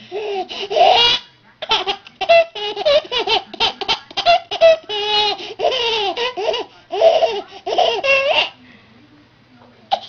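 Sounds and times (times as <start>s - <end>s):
baby laughing: 0.0s - 8.6s.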